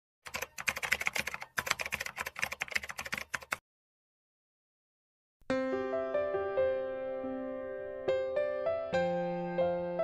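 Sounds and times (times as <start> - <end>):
computer keyboard typing: 0.2 - 3.6.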